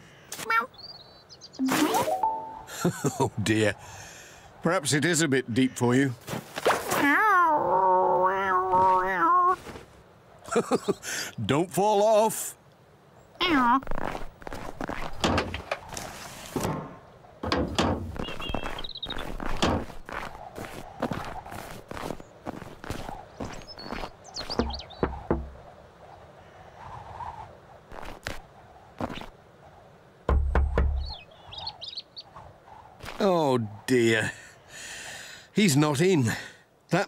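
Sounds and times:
bird chirps: 0.7 - 2.7, 18.1 - 20.1, 23.1 - 25.6, 30.6 - 32.5
footsteps through snow: 13.9 - 15.2, 15.9 - 16.6, 18.1 - 24.9
van door shutting: 16.6 - 18.2
knocking on wooden door: 24.6 - 25.6, 30.3 - 31.1.

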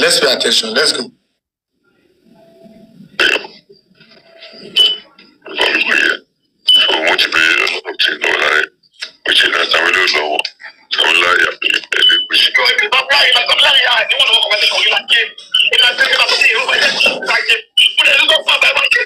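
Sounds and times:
recorded speech playback: 0.0 - 1.2, 2.3 - 19.0.

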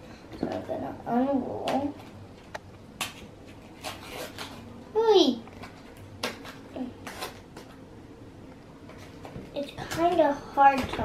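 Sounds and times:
child's voice: 0.4 - 2.0, 4.9 - 5.5, 9.6 - 11.0
paper wrapper crackling and ripping: 3.6 - 4.7.

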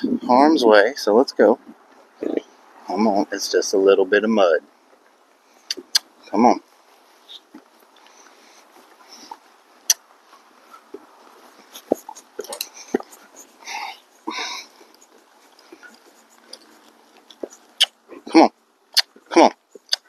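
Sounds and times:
faint steady hiss: 0.0 - 20.0
hooves on dirt: 6.7 - 18.0
horse breathing bursts: 8.0 - 18.1.

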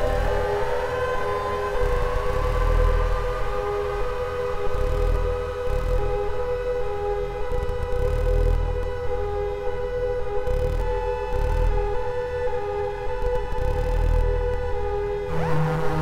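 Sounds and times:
synthesizer drone: 0.0 - 16.0.

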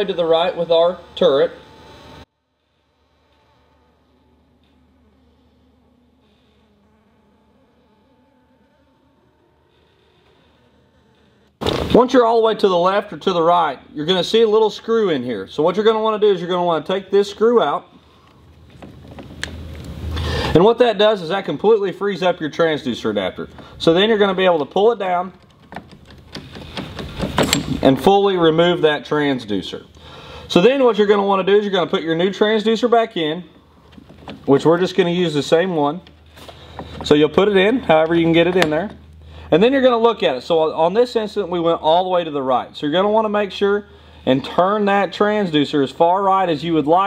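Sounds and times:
small electric motor humming: 0.0 - 11.6
metal clicks and rattles: 25.4 - 27.8.

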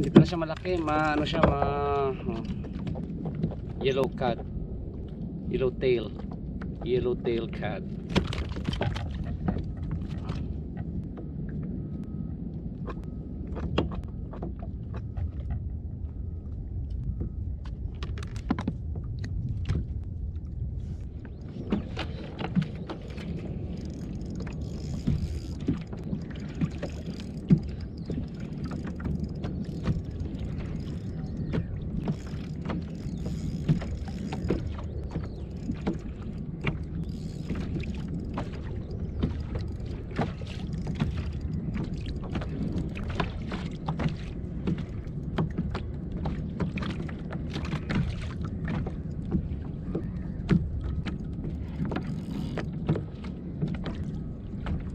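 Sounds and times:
low rumble: 0.0 - 54.9
water lapping against hull: 0.0 - 54.9.

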